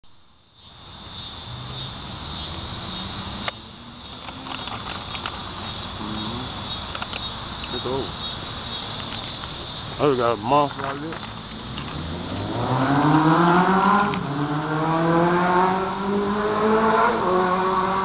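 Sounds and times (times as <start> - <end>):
insects buzzing: 0.0 - 18.0.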